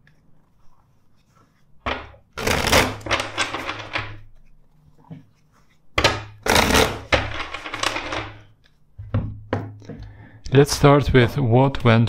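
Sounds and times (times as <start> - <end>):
cards shuffling: 2.4 - 4.6, 5.2 - 8.8.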